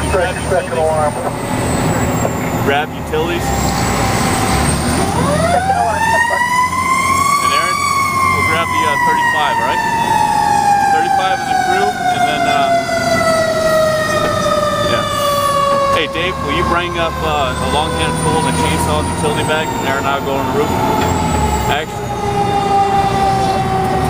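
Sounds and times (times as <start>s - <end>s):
fire truck siren: 0.0s - 24.0s
truck engine rumble: 0.0s - 24.0s.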